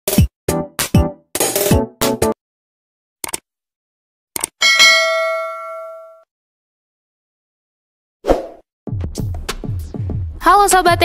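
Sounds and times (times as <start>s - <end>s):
short clicks: 4.4s - 4.6s
bell ding: 4.6s - 6.2s.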